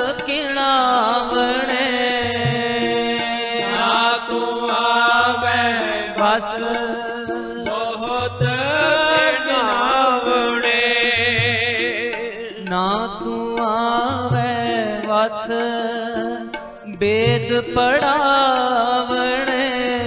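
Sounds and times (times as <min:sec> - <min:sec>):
person singing hymn: 0:00.0 - 0:11.2
harmonium chords: 0:00.0 - 0:20.0.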